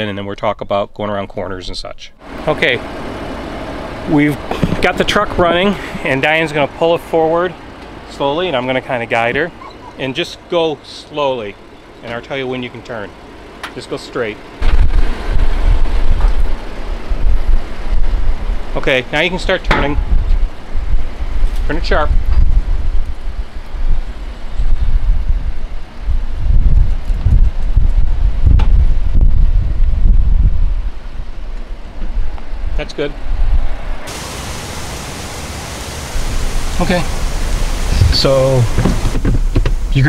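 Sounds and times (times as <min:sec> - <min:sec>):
steady quiet hiss: 0:00.0 - 0:15.4, 0:34.1 - 0:40.0
pickup truck rumbling: 0:02.2 - 0:40.0
wind buffeting microphone: 0:14.6 - 0:18.8, 0:19.4 - 0:34.2, 0:36.1 - 0:40.0.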